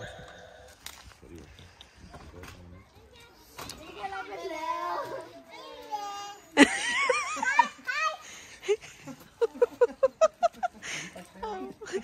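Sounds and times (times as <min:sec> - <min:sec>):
children calling out and talking: 0:02.6 - 0:09.6.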